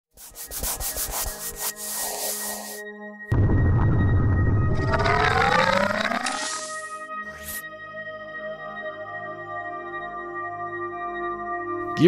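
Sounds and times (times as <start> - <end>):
deep boom: 3.3 - 5.7
rising tones sweeping up: 3.3 - 7.6.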